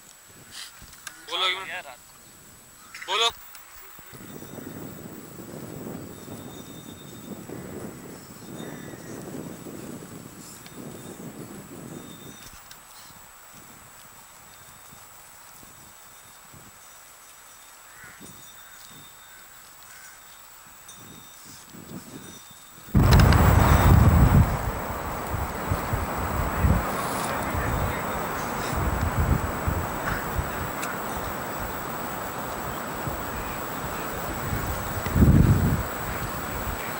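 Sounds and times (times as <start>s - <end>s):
wind rumbling on microphone: 4.0s - 16.8s, 21.0s - 36.9s
faint high whine: 23.0s - 36.9s.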